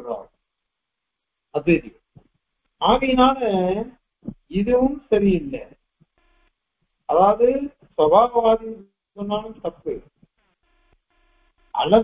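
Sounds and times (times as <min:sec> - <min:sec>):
man lecturing: 0:00.0 - 0:00.2, 0:01.6 - 0:01.9, 0:02.8 - 0:05.7, 0:07.1 - 0:10.0, 0:11.8 - 0:12.0.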